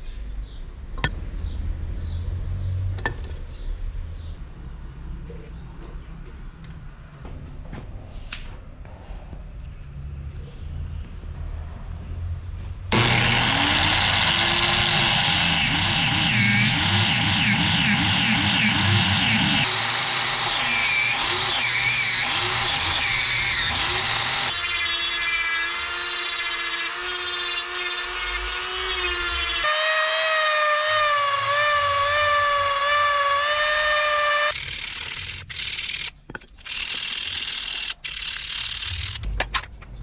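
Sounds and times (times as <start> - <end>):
angle grinder whining: 12.9 - 36.1.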